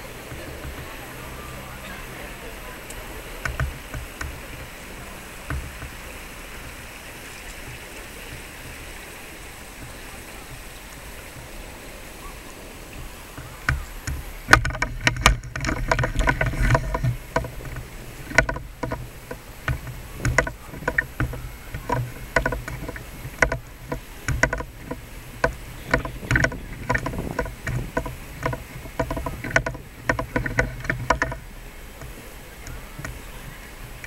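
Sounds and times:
camera handling knocks and rustles: 13.6 - 31.4.

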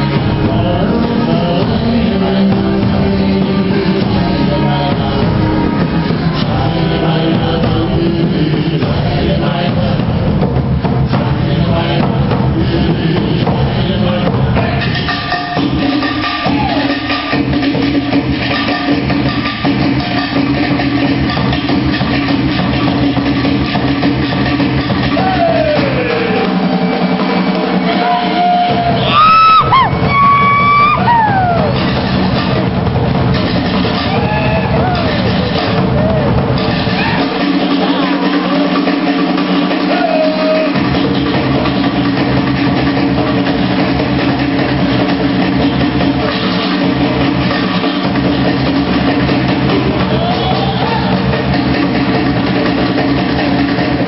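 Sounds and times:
fast continuous drumming: 0.0 - 54.0
live band music: 0.0 - 54.0.

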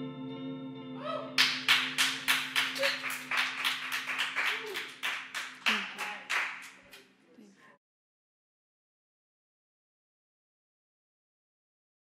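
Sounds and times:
electric guitar chord ringing: 0.0 - 2.3
hand clapping: 1.4 - 7.1.

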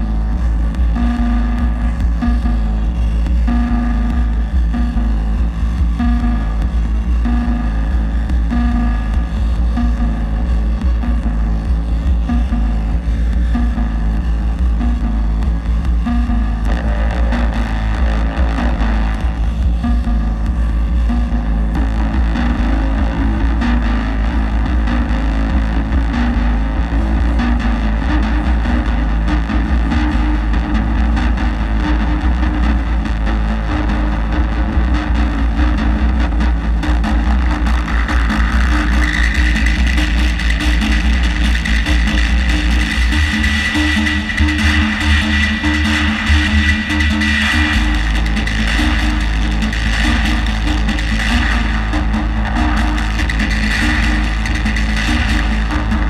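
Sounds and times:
heavy bass drone: 0.0 - 56.0
steady synthesizer tones: 0.0 - 56.0.

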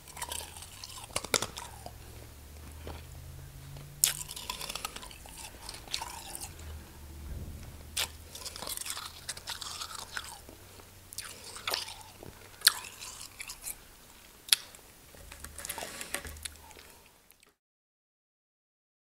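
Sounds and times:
chewing crunchy snow: 0.0 - 7.0, 8.0 - 17.4.

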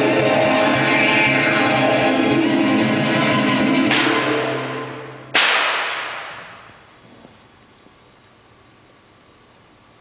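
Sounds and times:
live band held notes: 0.0 - 5.3
percussive crash: 2.6 - 6.7.

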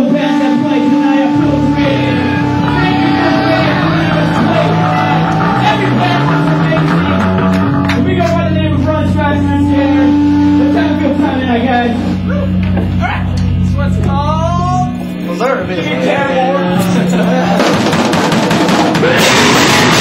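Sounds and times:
voices: 0.0 - 17.9
low bass and guitar notes: 0.0 - 18.1, 18.7 - 20.0
fast heavy rock song: 0.9 - 10.8, 17.0 - 20.0
drums and cymbals: 17.5 - 20.0.

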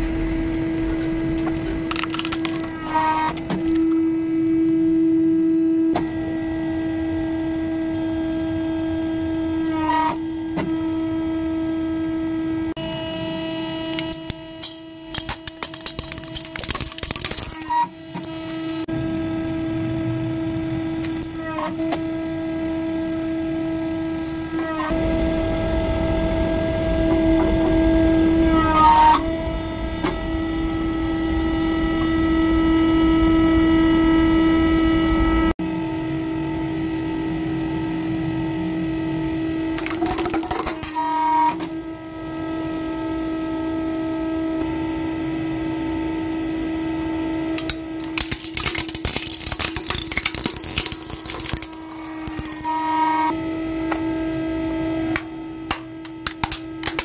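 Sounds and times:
objects crackling and crunching: 1.0 - 4.0, 15.2 - 18.9, 24.2 - 25.0, 39.6 - 41.7, 47.6 - 53.3, 55.7 - 57.0.

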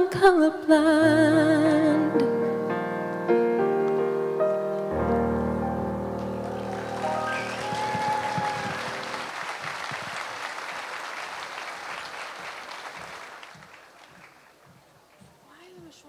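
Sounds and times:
final chord of accompaniment: 3.9 - 9.3
audience applauding: 6.0 - 15.2.

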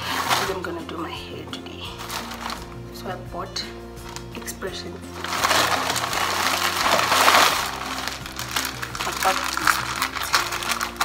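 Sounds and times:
plastic packaging crinkling: 0.0 - 0.7, 1.9 - 2.8, 4.0 - 4.5, 5.1 - 11.0
background music: 0.0 - 11.0.

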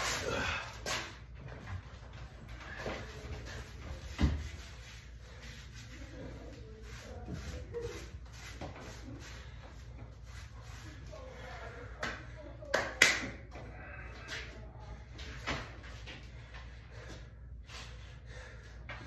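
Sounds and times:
hands rubbing in chalk: 3.4 - 11.2
sharp hand claps: 12.0 - 13.4.

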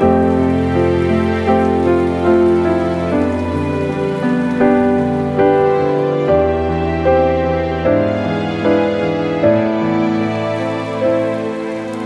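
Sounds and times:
rain falling: 0.0 - 12.0
soft music of held notes: 0.0 - 12.0.

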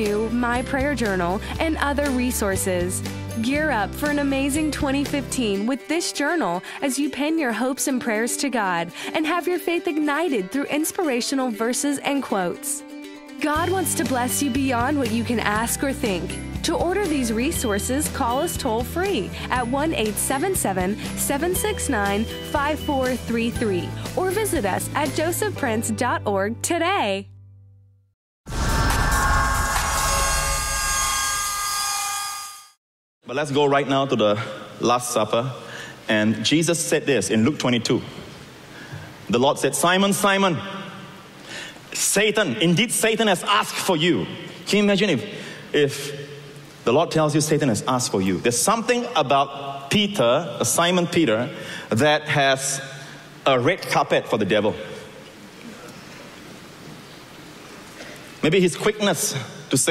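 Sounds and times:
room noise hiss: 33.6 - 59.9.

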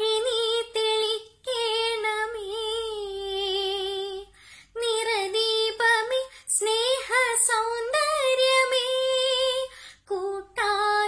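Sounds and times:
girl singing unaccompanied: 0.0 - 11.0.

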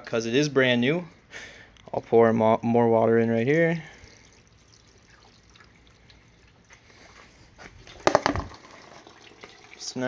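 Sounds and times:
water trickling through a funnel: 3.8 - 7.2, 7.9 - 10.0
sharp knocks: 8.0 - 8.8.

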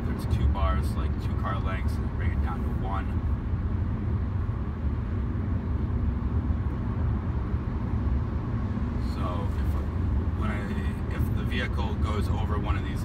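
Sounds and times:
car engine drone: 0.0 - 13.0
road and tyre rumble: 0.0 - 13.0.

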